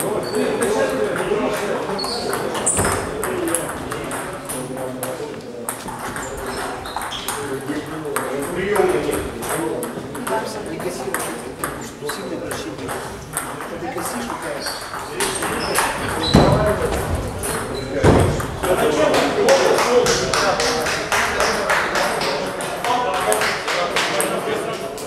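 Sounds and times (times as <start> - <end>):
voices talking: 0.0 - 25.0
table tennis balls clicking: 0.9 - 24.6.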